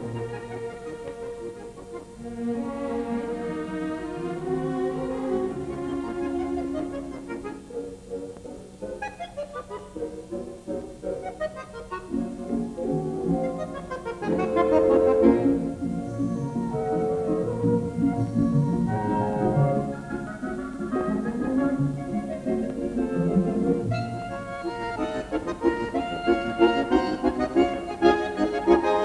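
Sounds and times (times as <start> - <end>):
button accordion playing: 0.0 - 7.8, 9.0 - 29.0
orchestra strings: 0.0 - 29.0.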